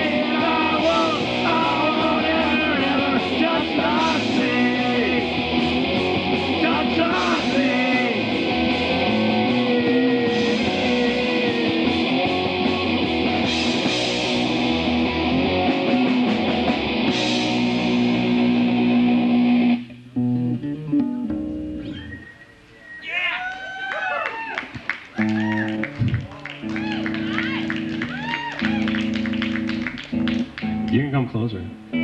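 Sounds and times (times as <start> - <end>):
electric guitar notes bending: 0.0 - 22.2, 25.3 - 32.0
held bass notes: 0.0 - 22.2, 25.2 - 32.0
live rock band playing: 0.0 - 22.2, 25.2 - 31.0.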